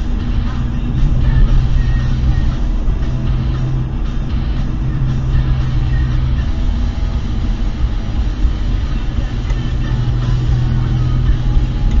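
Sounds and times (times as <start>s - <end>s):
car engine and road noise: 0.0s - 12.0s
low hum: 0.0s - 12.0s.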